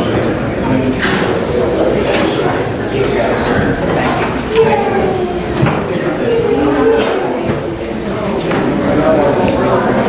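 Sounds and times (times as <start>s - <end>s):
hubbub of conversation: 0.0s - 10.0s.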